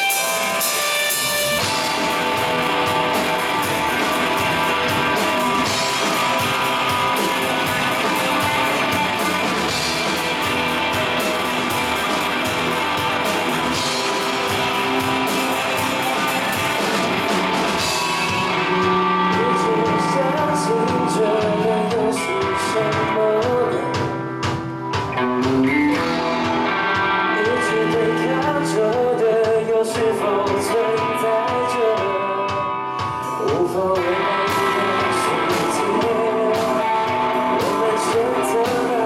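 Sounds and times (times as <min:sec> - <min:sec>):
bass guitar: 0:00.0 - 0:39.0
distorted electric guitars: 0:00.0 - 0:39.0
drums with cymbals: 0:00.0 - 0:39.0.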